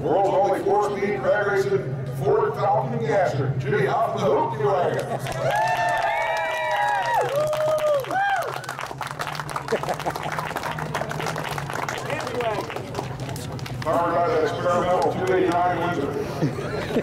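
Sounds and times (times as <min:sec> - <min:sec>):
steady low hum: 0:00.0 - 0:17.0
small crowd clapping: 0:05.0 - 0:14.0, 0:14.8 - 0:15.7
voice over loudspeaker: 0:13.8 - 0:16.3.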